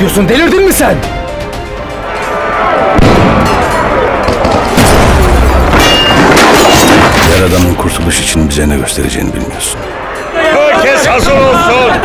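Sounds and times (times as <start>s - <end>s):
heavy boom: 3.0s - 5.9s.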